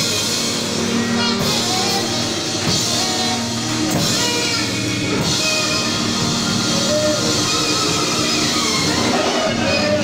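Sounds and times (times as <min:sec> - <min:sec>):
band playing worship song: 0:00.0 - 0:10.0.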